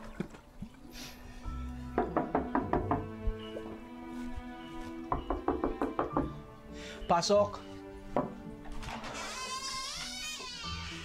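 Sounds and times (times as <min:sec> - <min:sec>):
soft background music: 0:00.0 - 0:11.0
knocking on wooden door: 0:02.0 - 0:03.2, 0:05.1 - 0:06.4, 0:08.2 - 0:08.4.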